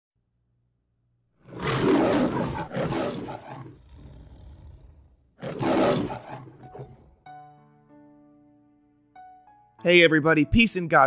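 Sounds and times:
lion roaring: 1.4s - 7.2s.

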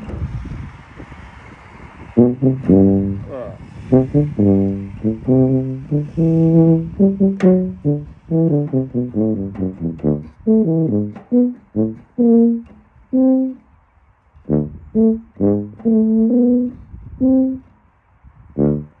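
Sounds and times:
tuba playing short notes: 2.2s - 13.7s, 14.5s - 17.7s, 18.6s - 19.0s.

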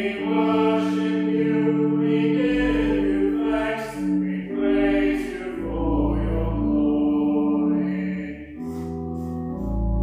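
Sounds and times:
congregation singing a hymn: 0.0s - 9.2s
organ accompaniment: 0.0s - 10.0s.

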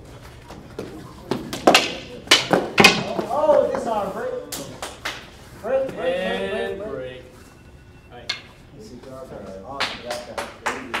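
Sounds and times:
voices: 1.1s - 11.0s
sharp hand claps: 9.7s - 11.0s.

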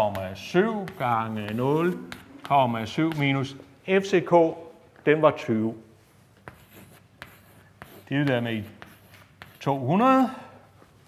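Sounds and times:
chalk scratching on blackboard: 0.0s - 3.4s, 6.3s - 10.0s
chalk tapping on board: 0.0s - 3.4s, 6.4s - 9.8s.

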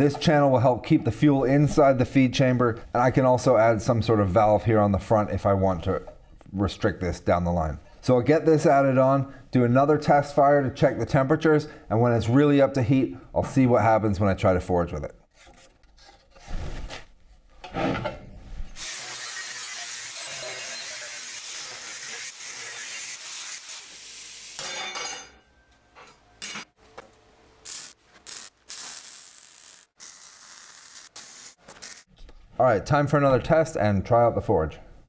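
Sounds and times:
welding bursts: 18.8s - 24.6s, 27.6s - 32.1s
angle grinder cutting steel: 18.8s - 24.8s, 27.7s - 32.1s.

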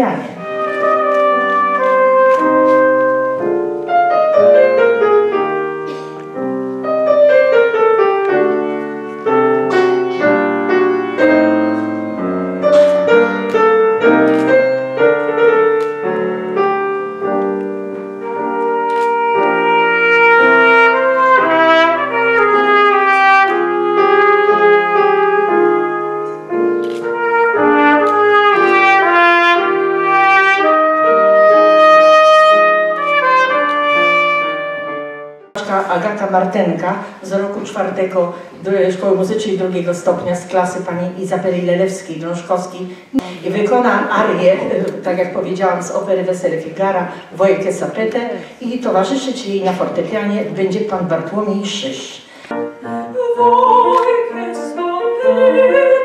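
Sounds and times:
grand piano playing: 0.0s - 42.8s, 52.5s - 56.0s
trumpet long held notes: 0.4s - 6.0s, 18.1s - 35.6s.

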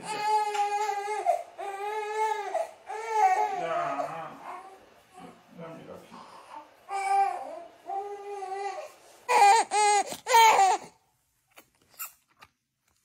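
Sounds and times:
newborn baby crying: 0.0s - 5.4s, 6.2s - 11.0s.

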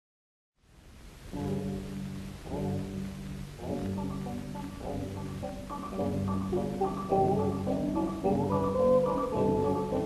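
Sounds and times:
record surface hiss: 0.6s - 10.0s.

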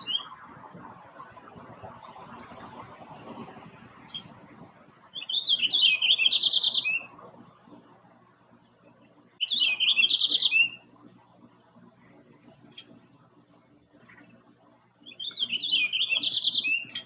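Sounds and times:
finch singing warbling song: 0.0s - 2.8s, 5.0s - 7.2s, 9.4s - 10.9s, 15.0s - 17.0s.

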